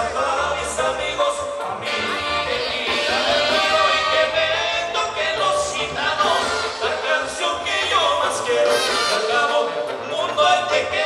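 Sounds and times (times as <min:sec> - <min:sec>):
dance band with singer: 0:00.0 - 0:11.0.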